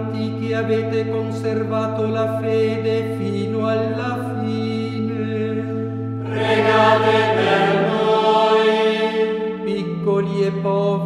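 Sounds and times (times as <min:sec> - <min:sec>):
choir chanting: 0:06.2 - 0:09.6.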